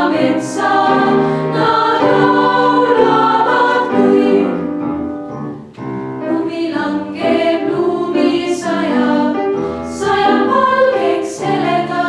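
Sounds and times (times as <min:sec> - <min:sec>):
girls' choir singing in harmony: 0:00.0 - 0:12.0.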